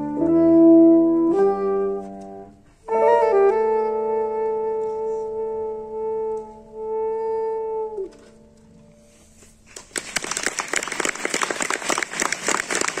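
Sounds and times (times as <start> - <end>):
soprano saxophone: 0.0 - 9.1
piano: 0.0 - 13.0
audience applause: 9.8 - 13.0.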